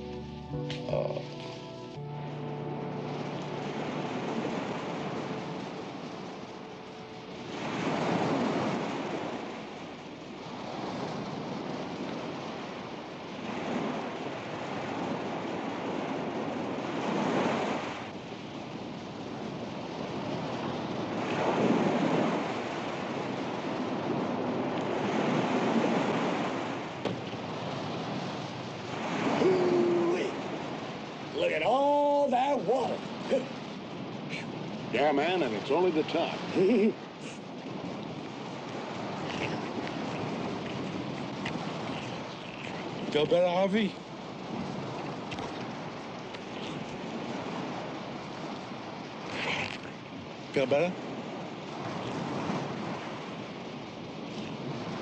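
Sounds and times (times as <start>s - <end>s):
ocean surf breaking on beach: 0.0s - 55.0s.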